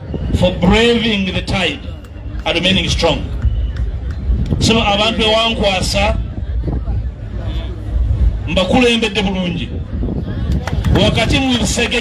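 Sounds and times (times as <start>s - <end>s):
steady low rumble: 0.0s - 12.0s
man speaking over loudspeakers: 0.3s - 3.4s, 4.6s - 6.3s, 8.4s - 9.8s, 10.9s - 12.0s.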